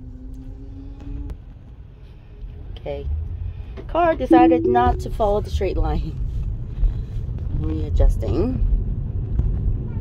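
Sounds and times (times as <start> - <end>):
road rumble inside car: 0.0 - 10.0.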